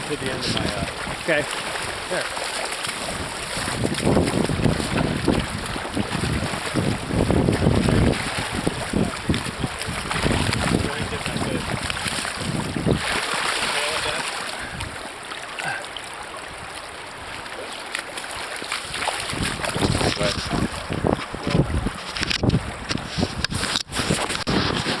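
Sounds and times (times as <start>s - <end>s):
fish splashing at surface: 0.0s - 16.0s, 17.6s - 25.0s
rushing river current: 0.0s - 25.0s
wind buffeting microphone: 3.0s - 13.2s, 19.2s - 25.0s.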